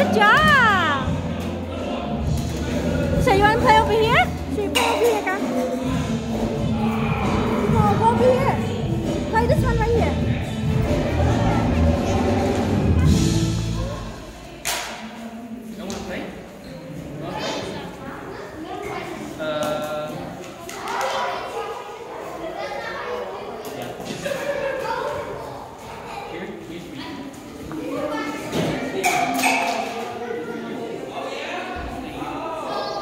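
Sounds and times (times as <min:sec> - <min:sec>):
faint background voices: 0:00.0 - 0:33.0
hall chatter: 0:00.0 - 0:33.0.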